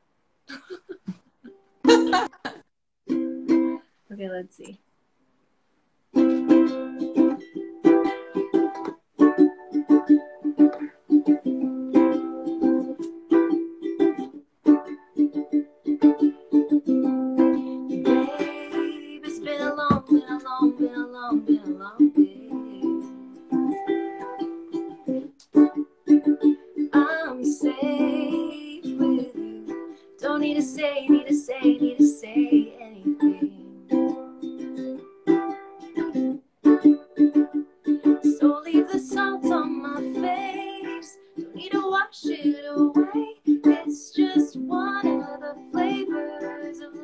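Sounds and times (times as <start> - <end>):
ukulele strumming: 1.4 - 3.9, 6.1 - 47.0.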